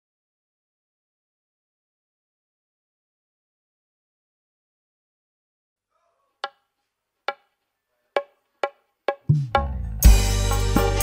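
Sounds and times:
wooden percussion strikes: 8.2s - 11.0s.

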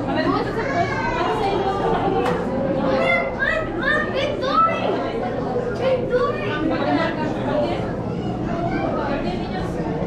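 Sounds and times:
murmur of chatter: 0.0s - 10.0s.

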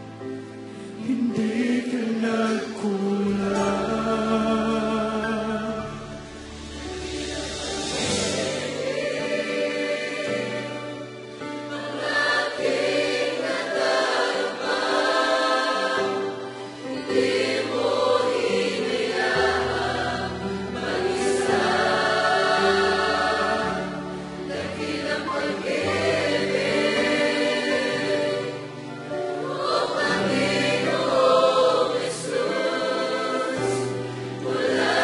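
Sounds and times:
choir singing worship song: 0.0s - 35.0s.

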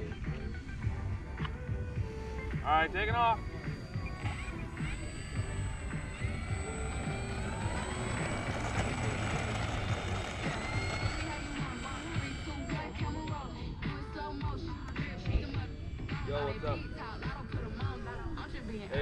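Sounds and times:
model airplane motor whine: 0.0s - 19.0s.

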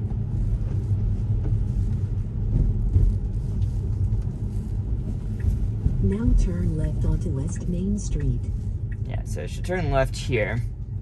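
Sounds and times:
tyres rumbling on wet road: 0.0s - 11.0s.

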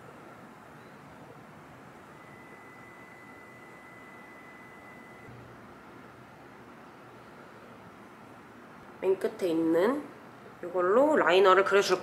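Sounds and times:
thin high steady tone: 0.0s - 5.4s
room tone hiss: 0.0s - 12.0s.

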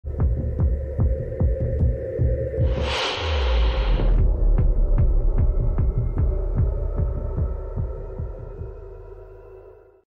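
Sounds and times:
low thumping pulse: 0.1s - 9.4s.

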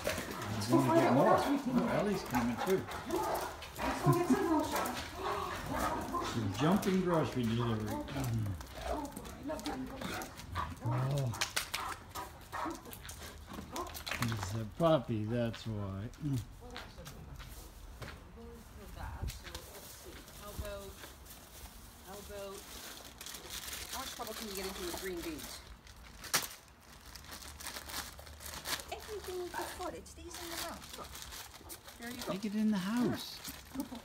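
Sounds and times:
plastic packaging crinkling: 0.0s - 12.0s, 12.9s - 16.8s, 19.4s - 34.0s
footsteps on brick pavers: 0.0s - 23.2s.

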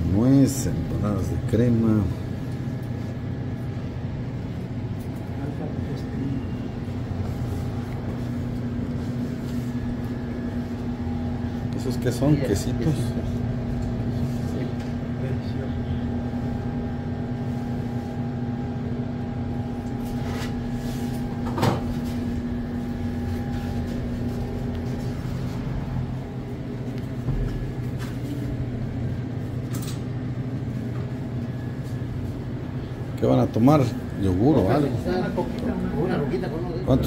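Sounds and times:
refrigerated coolers humming: 0.0s - 37.0s.

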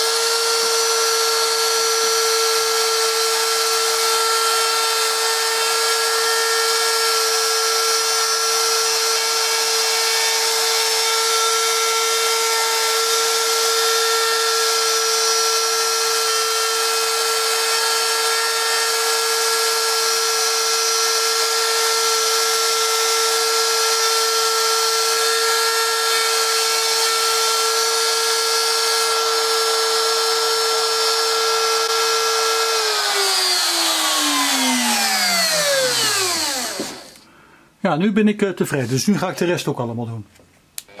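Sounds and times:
router motor whining: 0.0s - 37.3s.

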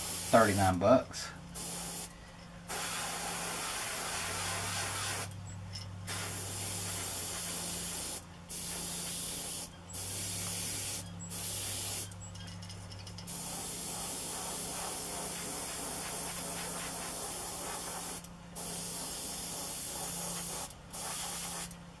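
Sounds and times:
airbrush spraying hiss: 0.0s - 0.8s, 1.6s - 5.3s, 6.1s - 12.2s, 13.3s - 21.8s.

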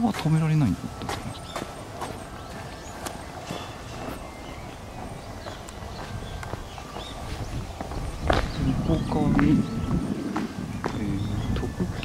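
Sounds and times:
light footsteps: 0.0s - 12.0s
low background noise: 0.0s - 12.0s.

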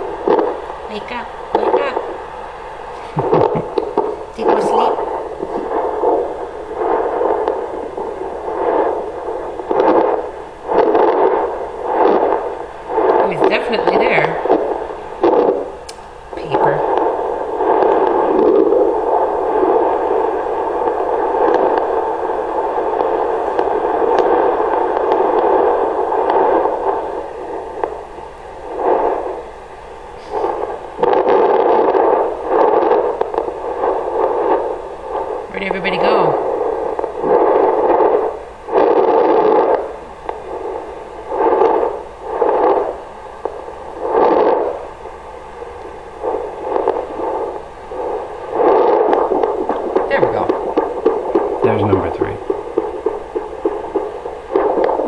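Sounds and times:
doppler static hiss: 0.0s - 55.0s
scratchy probe crackles: 0.0s - 55.0s.

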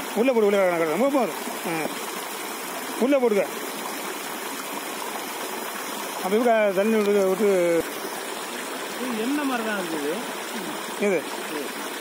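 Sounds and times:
flowing water rushing: 0.0s - 12.0s.

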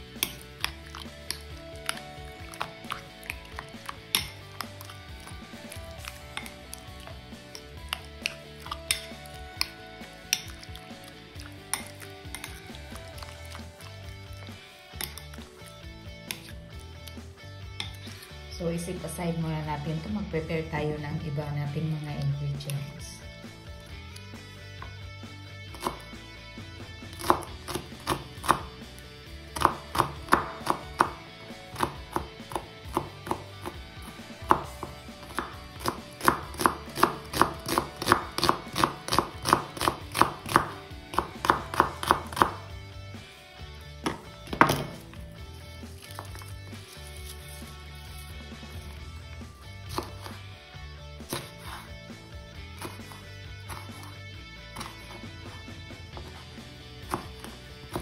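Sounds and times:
knife chopping on wooden board: 25.7s - 26.0s, 27.2s - 28.8s, 29.5s - 42.7s, 44.0s - 45.1s, 49.9s - 50.4s, 51.3s - 51.9s, 52.8s - 54.1s, 54.8s - 55.2s, 57.0s - 58.0s.

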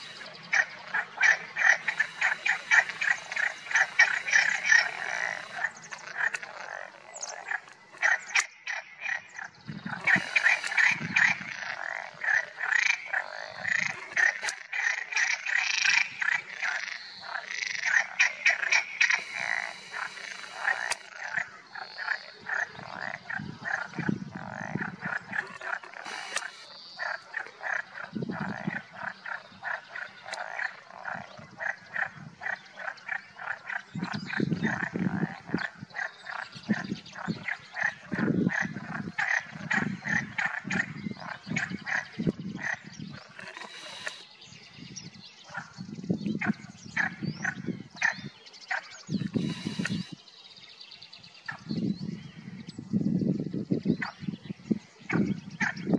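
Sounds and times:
deeper frog croaks: 0.0s - 44.3s, 46.4s - 50.2s
frogs croaking chorus: 0.0s - 52.6s, 53.2s - 55.9s.

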